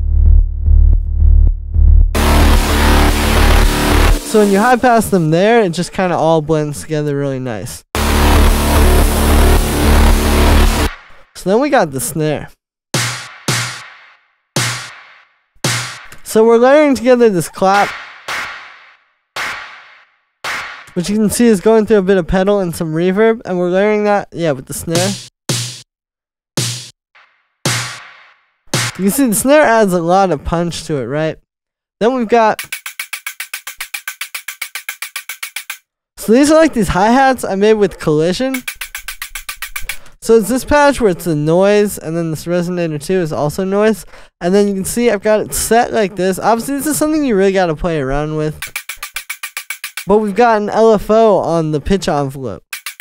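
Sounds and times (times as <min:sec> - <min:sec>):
electronic music loop: 0:02.2 - 0:05.3, 0:08.0 - 0:11.0, 0:32.6 - 0:35.8, 0:38.5 - 0:40.0, 0:48.6 - 0:50.1
synthesized hi-hat ticks: 0:32.6 - 0:35.8, 0:38.5 - 0:40.0, 0:48.6 - 0:50.1, 0:52.7 - 0:53.0.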